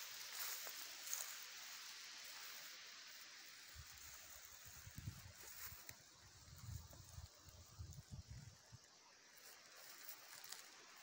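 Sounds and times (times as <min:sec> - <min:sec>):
faint wind hiss: 0:00.0 - 0:11.0
wind buffeting on microphone: 0:04.8 - 0:05.4.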